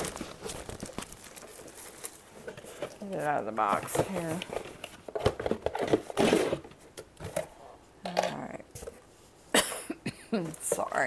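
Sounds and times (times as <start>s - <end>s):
plastic bag crinkling: 0.0s - 6.6s
cardboard box rustling: 0.0s - 6.7s.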